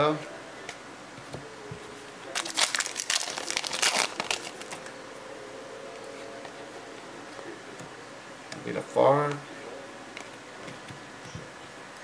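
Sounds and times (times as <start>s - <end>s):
foil wrapper crinkling and tearing: 2.3s - 4.9s.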